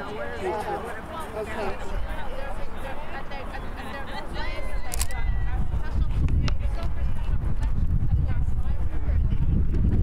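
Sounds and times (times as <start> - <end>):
faint voices talking: 0.0 - 10.0.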